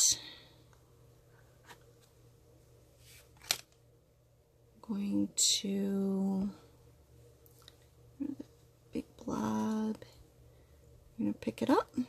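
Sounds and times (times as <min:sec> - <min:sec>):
woman speaking: 0:00.0 - 0:00.4, 0:04.8 - 0:06.7, 0:08.2 - 0:10.2, 0:11.2 - 0:12.0.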